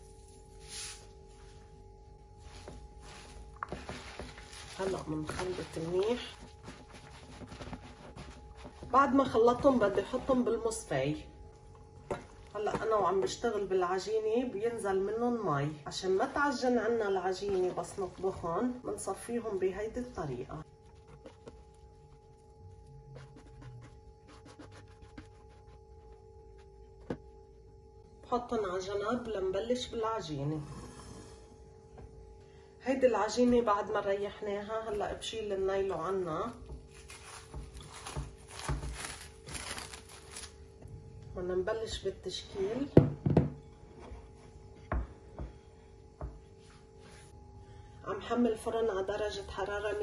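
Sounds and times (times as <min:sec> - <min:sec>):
faint steady hum: 0:00.0 - 0:50.0
vegetables rustling in a pot: 0:02.4 - 0:10.9, 0:36.8 - 0:40.6.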